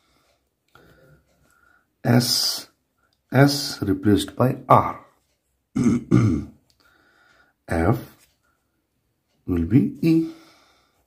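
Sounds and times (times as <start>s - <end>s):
person clearing throat: 5.8s - 6.6s.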